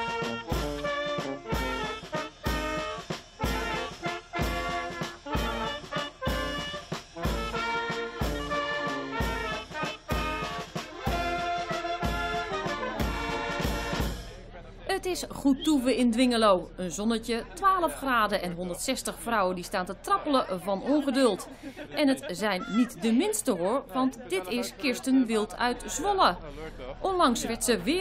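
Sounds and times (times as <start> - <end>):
brass street band with accordion: 0.0 - 28.0.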